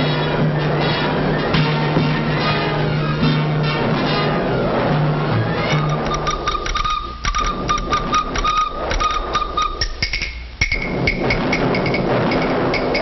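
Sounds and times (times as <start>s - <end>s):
sharp taps: 5.9s - 13.0s
sharp knock: 6.1s - 13.0s.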